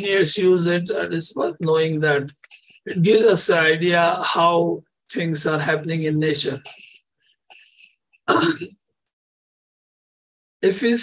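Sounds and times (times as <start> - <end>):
man clearing his throat: 8.3 - 8.7.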